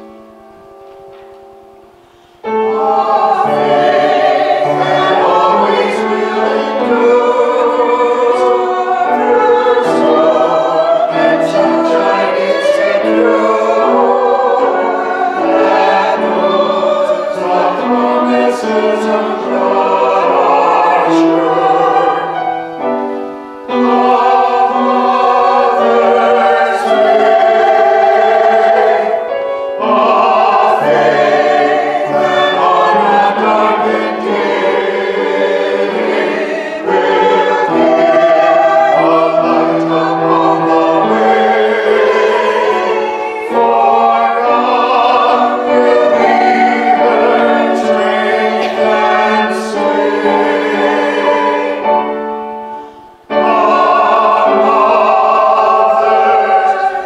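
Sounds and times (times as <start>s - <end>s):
mixed choir singing a hymn: 0.0s - 0.4s, 2.4s - 57.0s.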